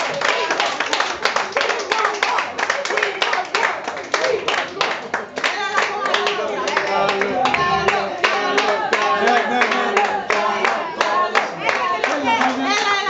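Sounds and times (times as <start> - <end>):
audience clapping: 0.0 - 13.0
voices talking: 6.4 - 8.5.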